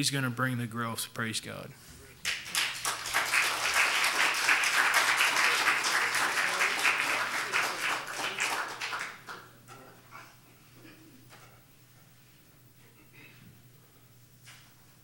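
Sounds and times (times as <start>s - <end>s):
congregation applauding: 2.2s - 9.7s.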